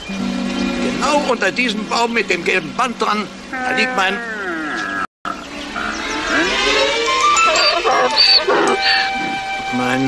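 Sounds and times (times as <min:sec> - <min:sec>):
television score music: 0:05.6 - 0:10.0.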